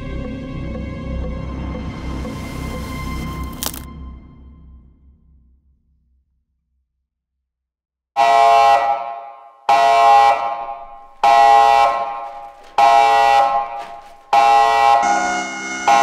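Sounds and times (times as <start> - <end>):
blaring horn blasts: 8.2 - 16.0.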